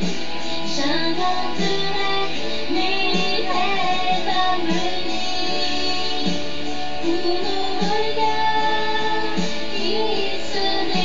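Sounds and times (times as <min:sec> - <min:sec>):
guitar accompaniment: 0:00.0 - 0:11.0
woman singing: 0:00.6 - 0:11.0.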